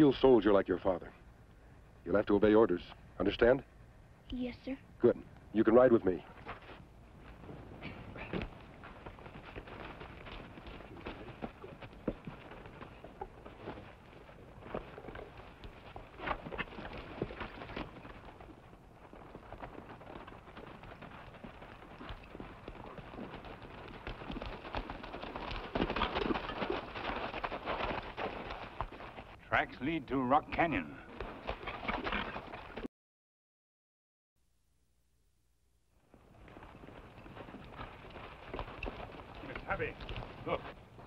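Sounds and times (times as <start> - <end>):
horse hoofbeats on rocky ground: 5.6 - 32.9, 36.0 - 41.0.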